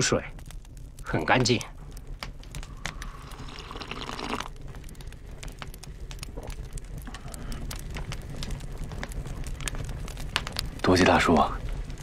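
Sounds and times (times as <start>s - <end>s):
wood fire crackling: 0.0s - 12.0s
slurping sip from cup: 3.2s - 4.5s.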